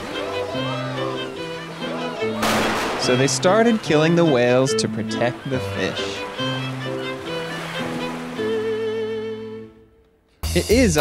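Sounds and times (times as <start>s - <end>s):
held background music notes: 0.0s - 11.0s.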